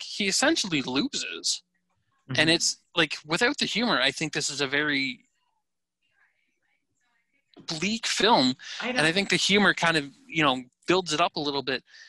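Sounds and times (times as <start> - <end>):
man's voice trailing off: 0.0 - 1.6, 2.3 - 5.1, 7.7 - 12.0.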